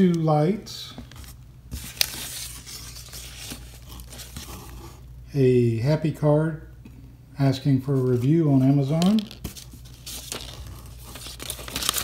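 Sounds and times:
cardboard and paper rustling: 0:00.9 - 0:05.0, 0:08.0 - 0:12.0.

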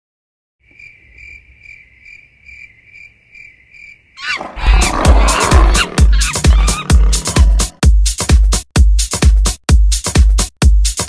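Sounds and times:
cricket-like chirping: 0:00.6 - 0:07.2
loud roar: 0:04.2 - 0:07.8.

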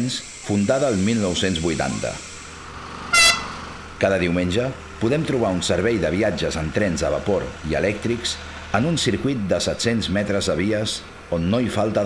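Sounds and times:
miniature train whistle toot: 0:03.1 - 0:03.6.

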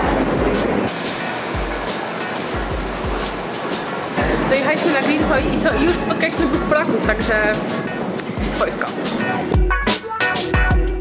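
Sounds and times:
subway train rushing: 0:00.0 - 0:09.6
background music with steady beat: 0:00.0 - 0:11.0.

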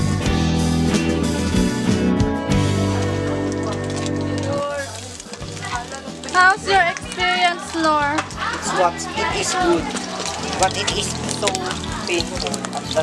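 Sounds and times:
guitar music: 0:00.0 - 0:13.0
young people talking and exclaiming: 0:02.8 - 0:13.0.

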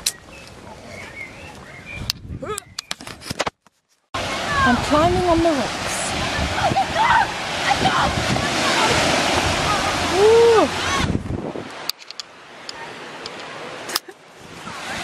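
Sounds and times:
people's voices: 0:04.2 - 0:11.2
surf rushing: 0:04.2 - 0:15.0.

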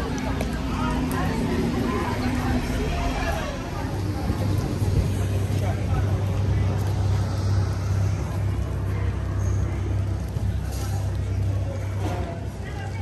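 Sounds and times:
road traffic hum: 0:00.0 - 0:13.0
voices of passers-by: 0:00.0 - 0:13.0.

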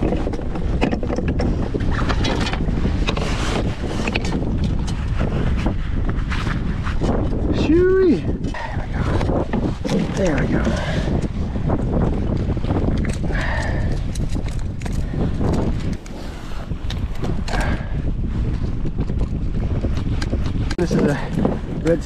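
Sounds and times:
knocks and clicks from handling gear: 0:00.0 - 0:05.0, 0:09.1 - 0:16.2
wind buffeting microphone: 0:00.0 - 0:22.0.

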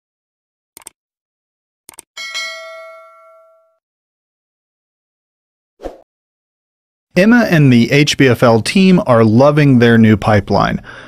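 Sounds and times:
notification bell chime: 0:02.2 - 0:03.8.

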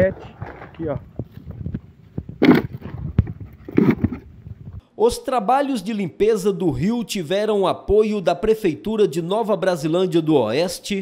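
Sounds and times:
low handling or wind rumble: 0:00.0 - 0:04.8.

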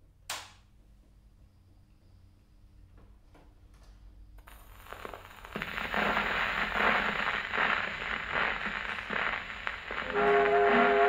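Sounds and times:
record surface noise and crackle: 0:04.3 - 0:11.0.

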